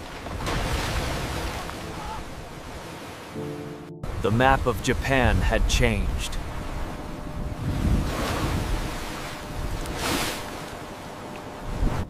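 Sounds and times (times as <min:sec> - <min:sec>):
sea waves surging: 0:00.0 - 0:12.0
wind: 0:00.0 - 0:12.0.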